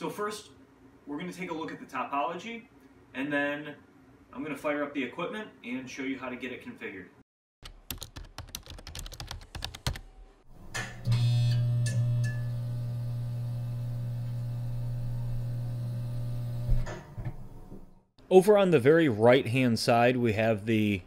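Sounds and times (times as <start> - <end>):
computer keyboard typing: 7.6 - 10.1.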